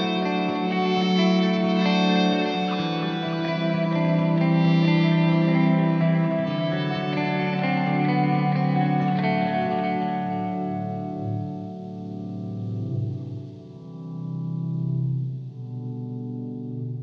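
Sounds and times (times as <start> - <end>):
ambient guitar music with effects: 0.0 - 17.0.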